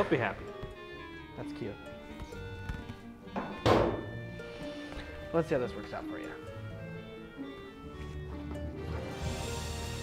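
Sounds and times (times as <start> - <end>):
background music with held notes: 0.0 - 10.0
mop hitting floor: 3.4 - 4.1.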